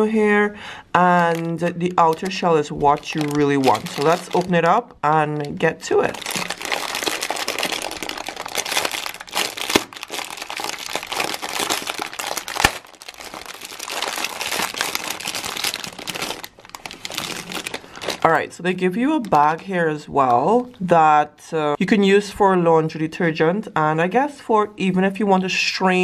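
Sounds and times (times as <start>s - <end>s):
plastic bag crinkling: 1.0s - 18.5s.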